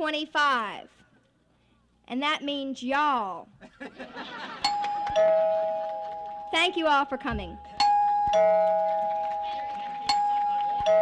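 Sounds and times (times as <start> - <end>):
two-note chime: 4.6 - 11.0.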